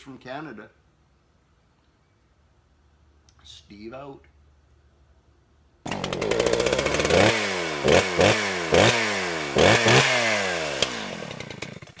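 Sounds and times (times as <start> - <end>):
small engine winding down: 5.8 - 12.0.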